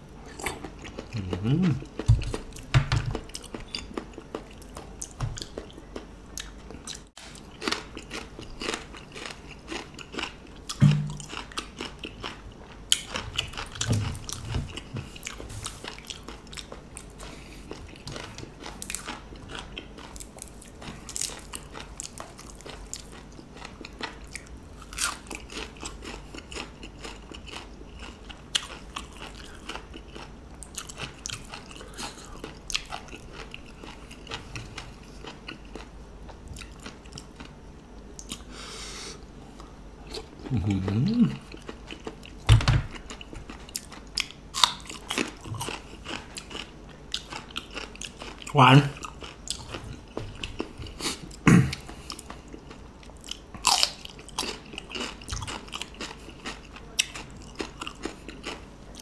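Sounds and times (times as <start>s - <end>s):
person chewing crunchy vegetables: 0.0s - 59.0s.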